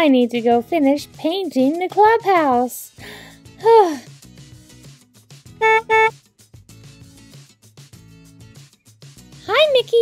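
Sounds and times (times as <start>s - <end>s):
light background music: 0.0s - 10.0s
toy car horn beeps: 5.6s - 6.1s.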